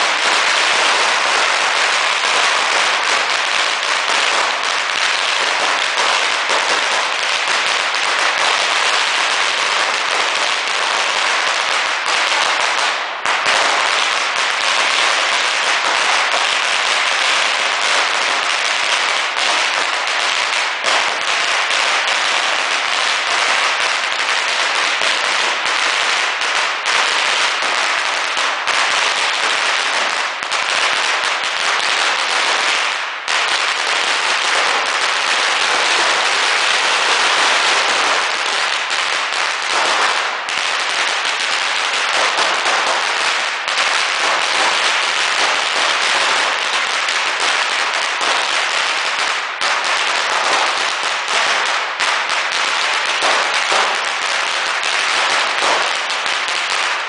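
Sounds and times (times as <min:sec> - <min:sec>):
firecrackers crackling rapidly: 0:00.0 - 0:57.0.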